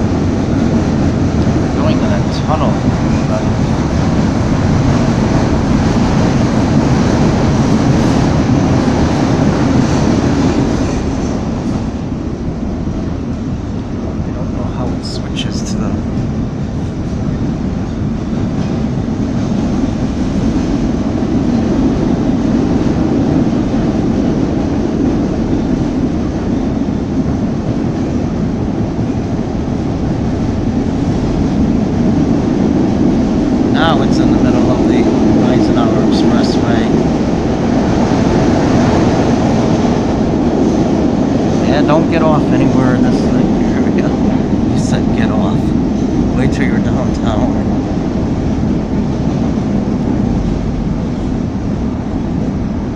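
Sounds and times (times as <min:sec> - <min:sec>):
train wheels rumbling on rails: 0:00.0 - 0:52.9.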